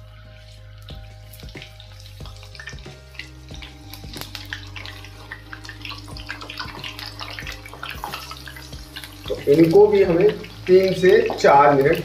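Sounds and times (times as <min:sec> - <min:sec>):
deep-frying in hot oil: 0:00.0 - 0:12.0.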